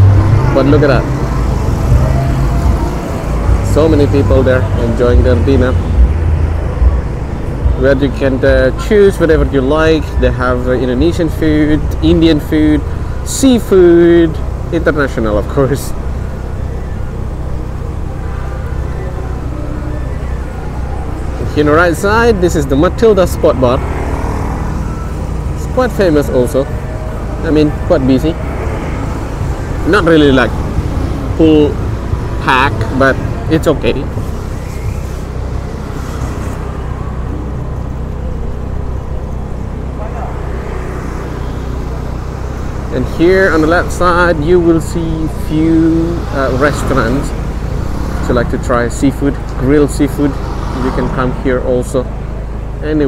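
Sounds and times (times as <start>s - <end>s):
car engine hum: 0.0s - 53.0s
street traffic rumble: 0.0s - 53.0s
tyres on road: 0.0s - 53.0s
motor scooters: 11.0s - 53.0s.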